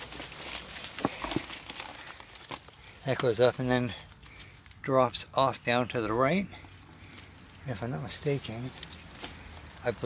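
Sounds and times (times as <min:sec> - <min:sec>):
twigs snapping: 0:00.0 - 0:04.8, 0:08.2 - 0:10.0
dry leaves rustling and crackling: 0:00.0 - 0:05.2, 0:06.9 - 0:10.0.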